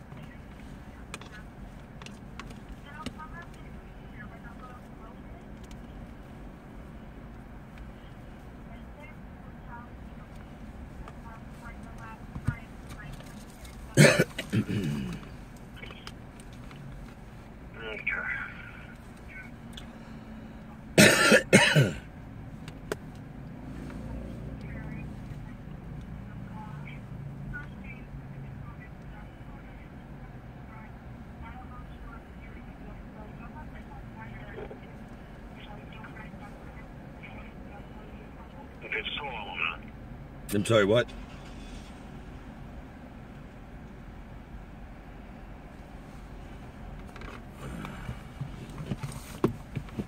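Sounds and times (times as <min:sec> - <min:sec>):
low background hum: 0:00.0 - 0:50.0
person coughing: 0:14.0 - 0:15.2, 0:21.0 - 0:22.1.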